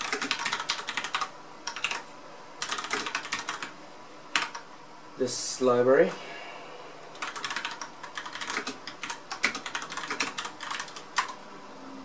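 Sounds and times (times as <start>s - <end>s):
typing on computer keyboard: 0.0s - 2.0s, 2.6s - 3.7s, 4.4s - 4.6s, 7.1s - 11.4s.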